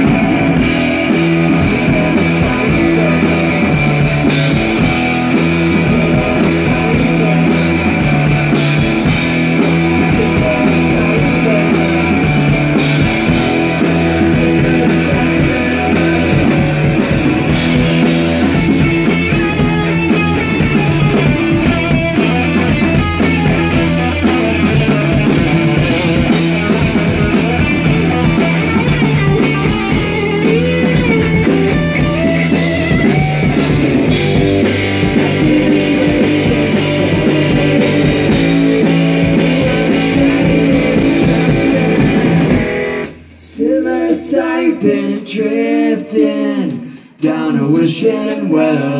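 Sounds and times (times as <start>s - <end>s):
electric bass: 0.0s - 43.6s
electric guitar: 0.0s - 43.9s
drum kit: 0.0s - 48.9s.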